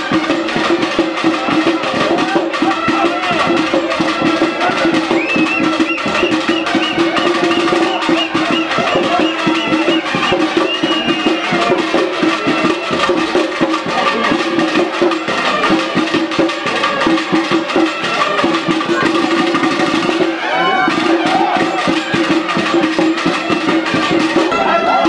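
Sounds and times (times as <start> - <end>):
rapid dense drumming: 0.0 - 25.0.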